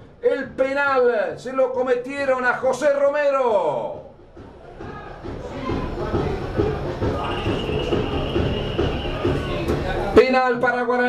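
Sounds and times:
dense low crowd rumble: 0:04.2 - 0:10.2
indistinct voices: 0:04.5 - 0:10.2.

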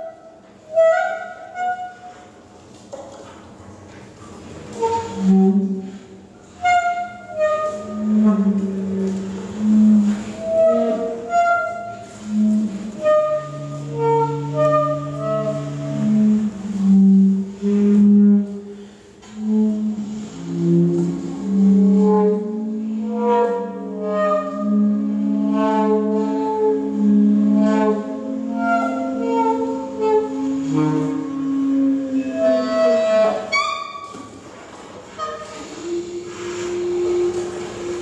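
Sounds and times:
saxophones improvising free jazz: 0:04.7 - 0:38.0.

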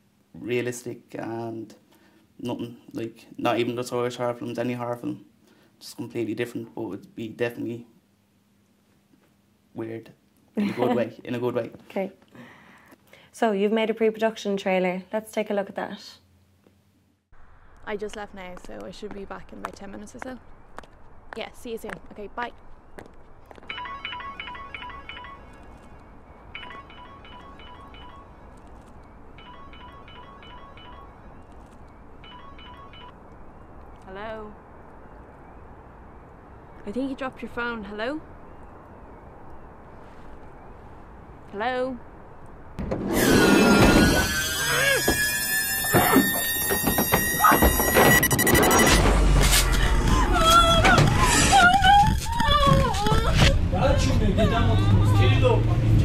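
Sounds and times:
phone ringtone beeps: 0:23.7 - 0:25.9, 0:26.5 - 0:28.4, 0:29.4 - 0:31.3, 0:32.2 - 0:33.2, 0:45.9 - 0:49.0
high eerie drone: 0:43.1 - 0:53.5.

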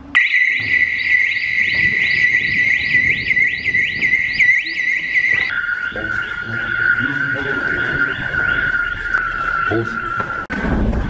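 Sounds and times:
electronic alarm whooping: 0:00.2 - 0:10.5.

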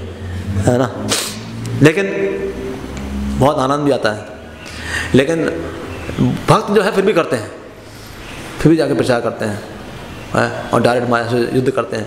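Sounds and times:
short sharp hiss: 0:01.0 - 0:01.6
man speaking into microphone: 0:05.1 - 0:07.7, 0:08.6 - 0:12.0.

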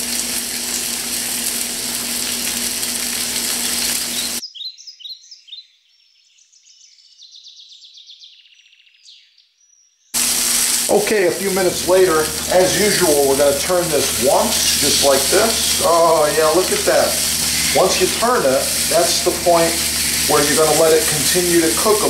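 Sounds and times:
meat sizzling in hot pan: 0:00.0 - 0:04.4, 0:10.2 - 0:22.0
faint bird chirps: 0:04.2 - 0:10.1.

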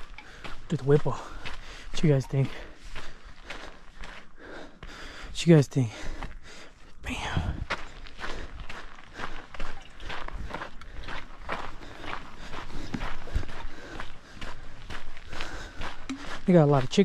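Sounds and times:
footsteps on gravel: 0:00.0 - 0:17.0.

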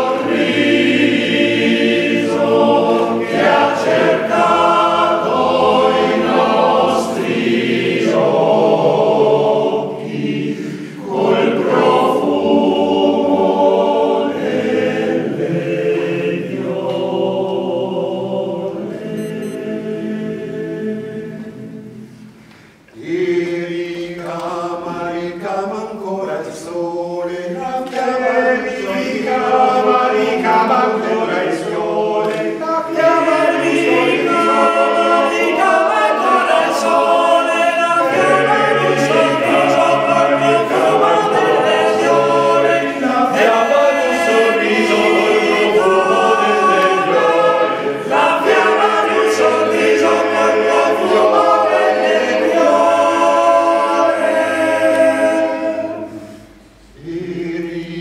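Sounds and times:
male choir singing: 0:00.0 - 0:22.1, 0:22.9 - 0:58.0.

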